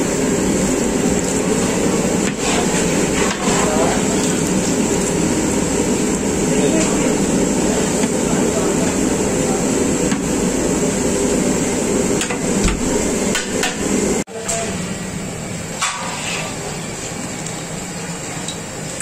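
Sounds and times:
gas burner rushing: 0.0s - 19.0s.

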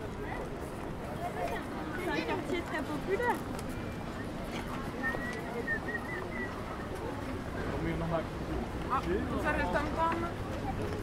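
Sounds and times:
people walking outdoors: 0.0s - 11.0s.

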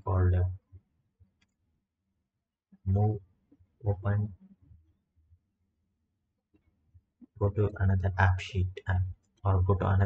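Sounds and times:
man's voice: 0.0s - 0.5s, 2.9s - 3.2s, 3.9s - 4.3s, 7.4s - 10.0s.

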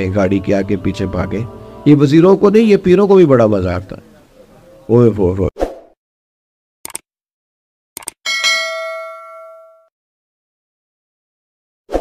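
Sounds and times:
quick clicks: 6.8s - 7.1s, 8.0s - 8.2s
bright bell ding: 8.3s - 9.9s.

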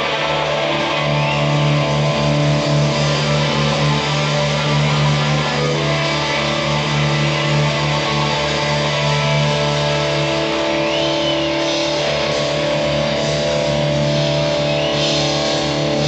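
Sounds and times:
electric guitar long held notes: 0.0s - 16.0s.

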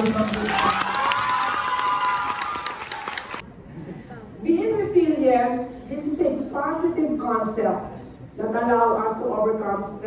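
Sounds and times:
audience clapping: 0.0s - 3.4s
voices cheering: 0.0s - 3.4s.

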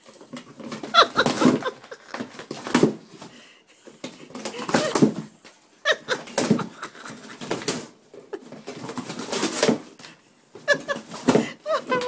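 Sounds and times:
cardboard tearing: 8.8s - 9.9s.

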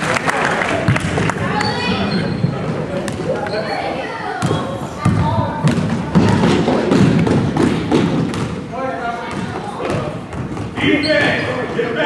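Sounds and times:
children's voices chattering: 1.3s - 7.9s
balls thudding on floor: 4.4s - 8.6s.

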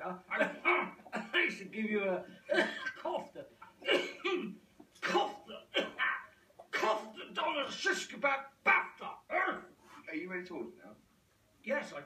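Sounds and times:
man coughing: 0.3s - 1.6s, 2.4s - 7.3s.

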